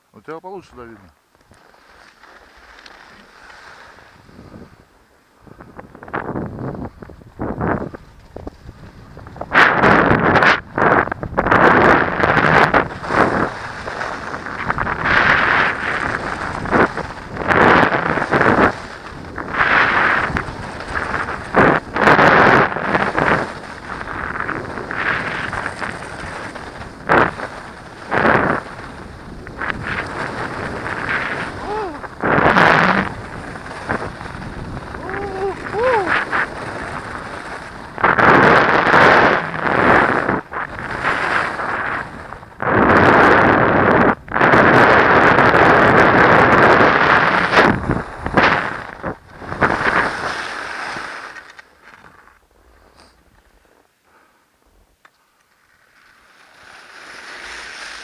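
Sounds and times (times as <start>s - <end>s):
skis scraping packed snow: 0.2s - 58.0s
wind rushing over microphone: 3.9s - 51.4s.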